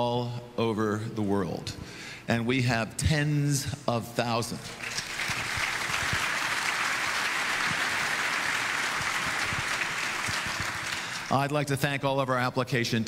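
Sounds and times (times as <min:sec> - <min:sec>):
audience applauding: 0:04.7 - 0:11.4.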